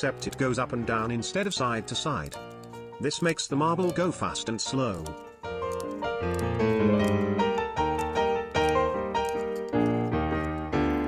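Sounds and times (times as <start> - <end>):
keyboard music sustained notes: 0.0 - 11.0.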